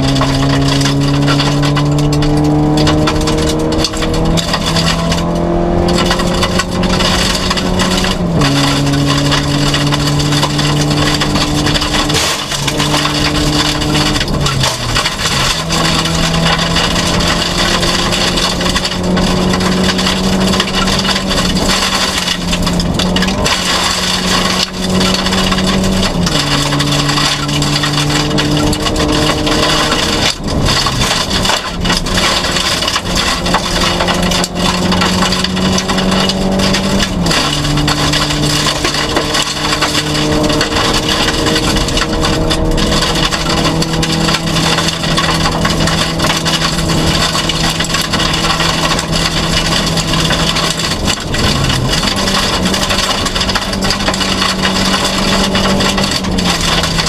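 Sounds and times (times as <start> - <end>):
car engine revving high: 0.0 - 57.0
tyres rushing on gravel: 0.0 - 57.0.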